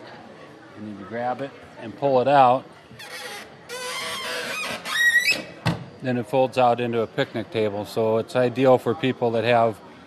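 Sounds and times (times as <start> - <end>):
rising squeak: 3.0 - 5.6.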